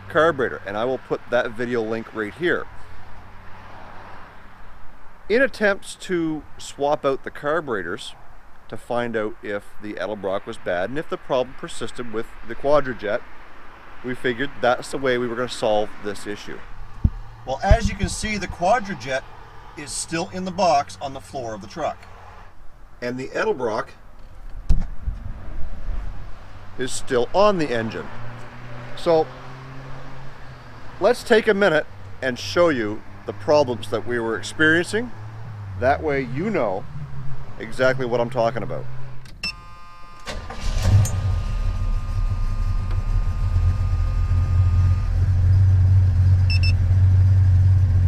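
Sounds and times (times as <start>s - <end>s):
microphone handling noise: 16.9s - 18.8s, 24.5s - 26.2s
wind rumble on microphone: 17.0s - 18.8s, 24.6s - 26.2s.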